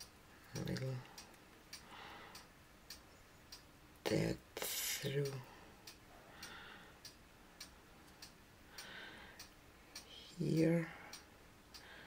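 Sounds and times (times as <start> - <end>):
faint ticks: 0.0 - 12.0.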